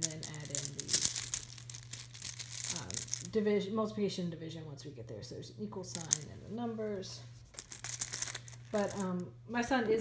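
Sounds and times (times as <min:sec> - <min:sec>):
plastic tiles clicking and rattling: 0:00.0 - 0:03.3, 0:07.6 - 0:09.1.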